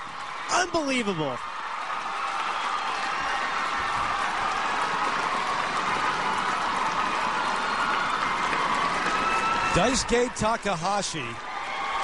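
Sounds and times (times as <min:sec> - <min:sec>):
crowd applauding and cheering: 0:00.0 - 0:12.0.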